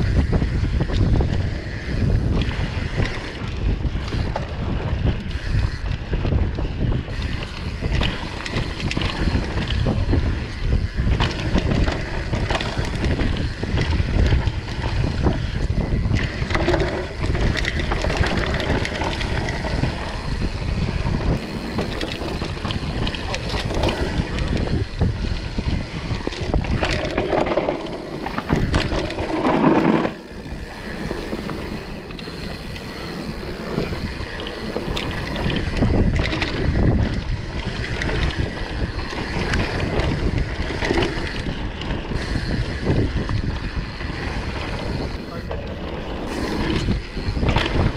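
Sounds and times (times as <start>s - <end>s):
bike chain and suspension rattling: 0.0s - 47.9s
tyres on dirt: 0.0s - 47.9s
wind over microphone: 0.0s - 47.9s.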